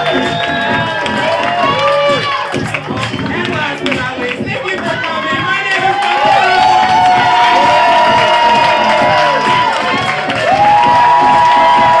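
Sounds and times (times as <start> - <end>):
audience cheering and clapping: 0.0 - 12.0.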